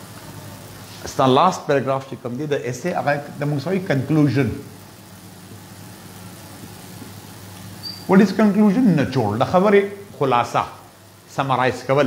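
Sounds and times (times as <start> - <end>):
faint hiss: 0.0 - 12.0
steady low hum: 0.0 - 12.0.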